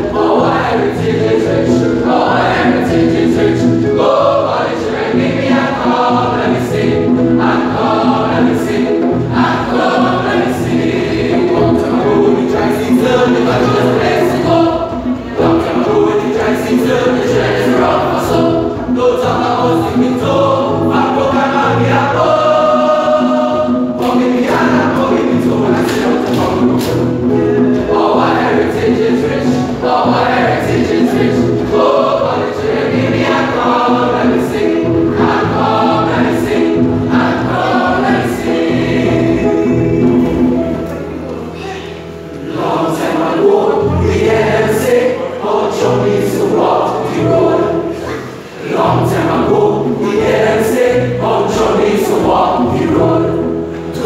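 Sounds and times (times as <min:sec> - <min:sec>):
male choir singing: 0:00.0 - 0:40.8, 0:41.8 - 0:54.0.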